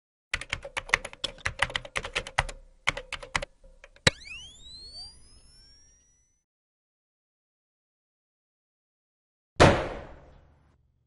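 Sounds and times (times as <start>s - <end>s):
keyboard typing clicks: 0.4s - 4.1s
cluster of rising tones: 4.1s - 6.4s.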